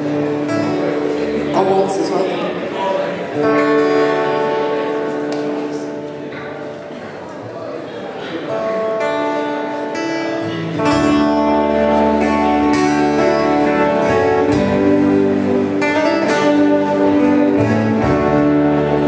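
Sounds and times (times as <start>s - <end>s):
bass guitar: 0.0s - 1.9s, 8.8s - 19.0s
acoustic guitars picked and strummed: 0.0s - 7.3s, 8.0s - 19.0s.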